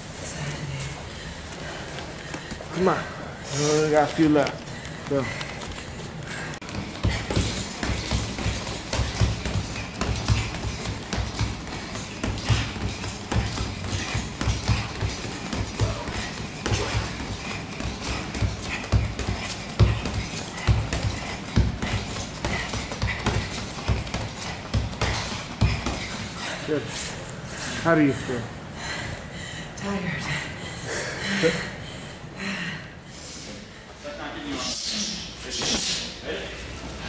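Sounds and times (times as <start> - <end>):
knee strikes thudding into heavy bag: 6.6 - 26.2.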